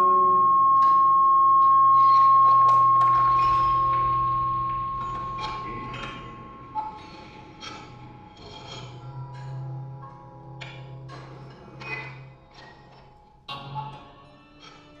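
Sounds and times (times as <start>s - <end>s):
held high guitar tone: 0.0s - 6.6s.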